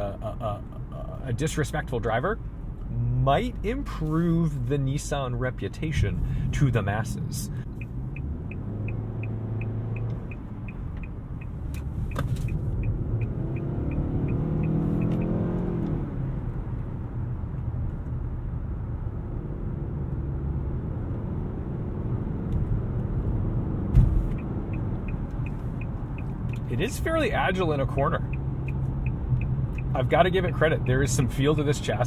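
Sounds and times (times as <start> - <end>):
turn signal ticking: 0.0 - 18.2, 22.4 - 32.0
car engine and road rumble: 0.0 - 32.0
thump: 23.9 - 24.3.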